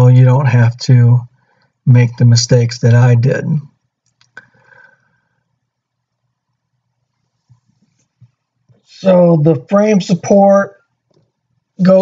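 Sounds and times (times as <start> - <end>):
faint clicks: 4.0 - 4.5.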